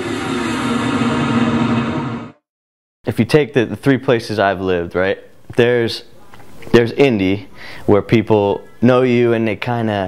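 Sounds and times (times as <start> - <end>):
noisy logo sting with tone: 0.0 - 2.4.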